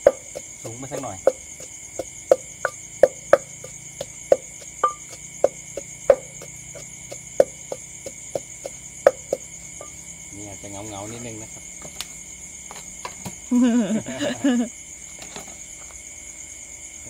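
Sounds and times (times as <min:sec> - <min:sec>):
pestle pounding in clay mortar: 0:00.0 - 0:10.0
crickets trilling: 0:00.0 - 0:17.0.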